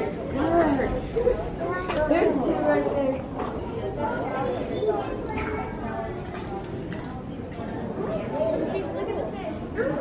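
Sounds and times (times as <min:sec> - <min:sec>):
echoing chatter of voices: 0:00.0 - 0:10.0.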